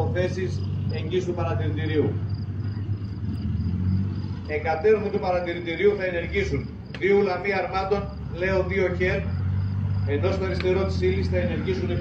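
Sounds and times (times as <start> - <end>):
crickets chirping: 0.0 - 12.0
distant tank engines rumbling: 0.0 - 12.0.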